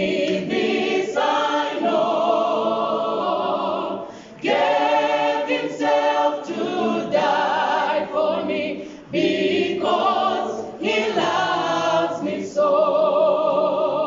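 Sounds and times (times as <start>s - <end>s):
choir singing a hymn a cappella: 0.0s - 14.0s.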